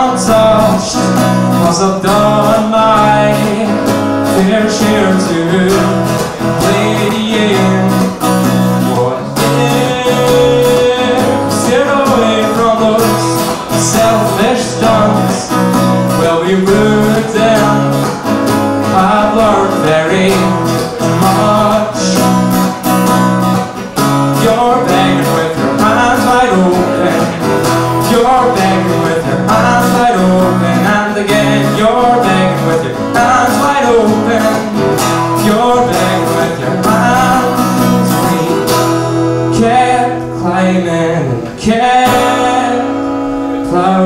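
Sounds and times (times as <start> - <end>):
acoustic guitar strumming: 0.0 - 44.0
man singing: 0.0 - 44.0.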